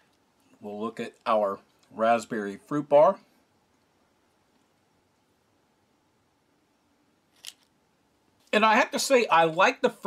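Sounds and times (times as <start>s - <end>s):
wrapped bar set on plastic tray: 7.3s - 7.8s.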